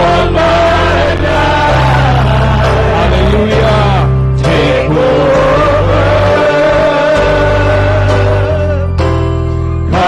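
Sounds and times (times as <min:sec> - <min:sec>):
bass: 0:00.0 - 0:10.0
keyboard: 0:00.0 - 0:10.0.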